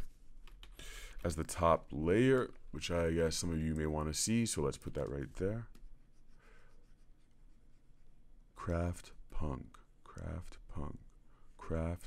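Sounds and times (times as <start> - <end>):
stylus scratching on tablet screen: 4.6 - 8.9.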